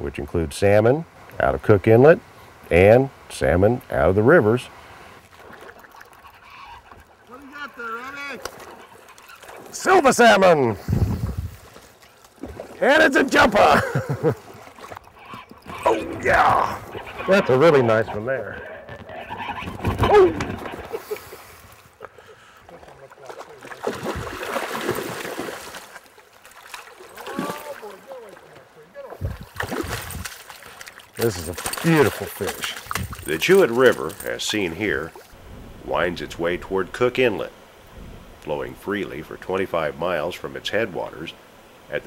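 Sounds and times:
flowing river water: 0:03.7 - 0:18.3, 0:20.1 - 0:42.0
fish splashing in river: 0:05.2 - 0:09.8, 0:22.8 - 0:28.6, 0:29.4 - 0:33.3.

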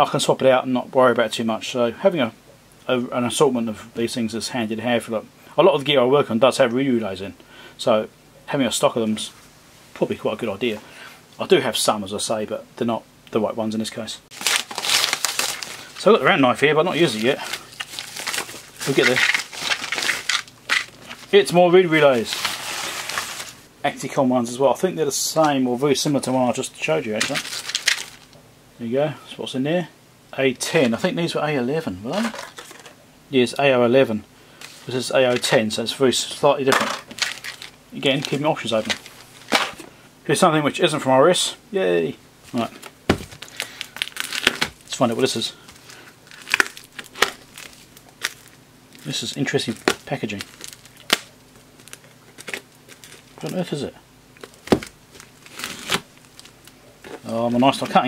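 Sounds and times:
plastic and paper packaging rustling: 0:14.3 - 0:23.7, 0:27.1 - 0:28.4, 0:32.1 - 0:33.0, 0:34.6 - 0:39.9, 0:42.5 - 0:58.0
plastic wrapping crinkling: 0:14.3 - 0:23.7, 0:27.1 - 0:28.4, 0:36.6 - 0:39.8, 0:42.5 - 0:53.8, 0:54.4 - 0:58.0.

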